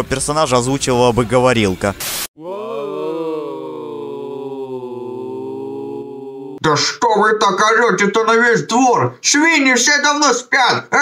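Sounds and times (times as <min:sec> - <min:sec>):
cartoon voices yelling: 0:02.4 - 0:06.7.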